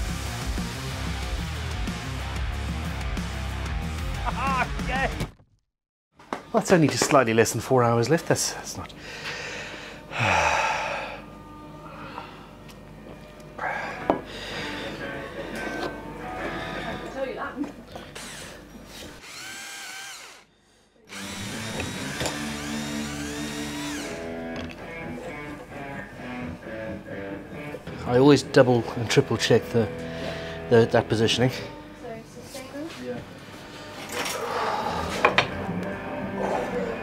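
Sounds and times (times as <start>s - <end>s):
background music: 0.0s - 5.3s, 6.4s - 19.7s, 21.1s - 37.0s
power drill boring wood: 18.1s - 20.5s, 21.1s - 24.7s.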